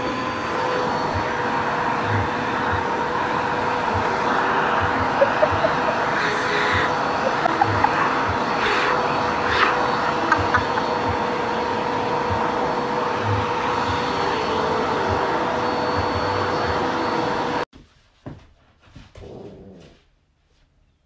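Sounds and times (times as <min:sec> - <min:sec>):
vacuum cleaner whine: 0:00.0 - 0:17.7.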